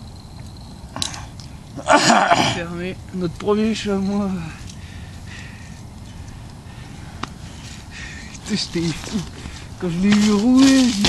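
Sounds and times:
low rumbling background noise: 0.0s - 11.0s
sharp click: 0.4s - 1.5s.

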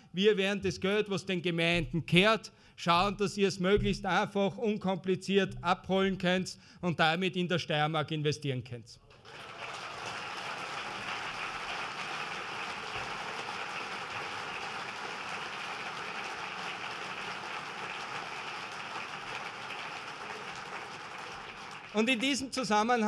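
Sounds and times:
audience applauding: 9.1s - 22.6s.

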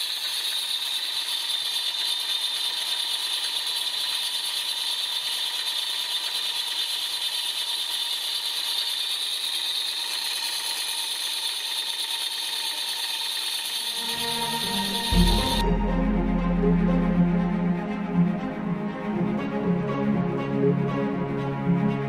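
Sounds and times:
light mechanical rattle: 0.0s - 14.0s
steam locomotive hissing: 0.0s - 18.1s.

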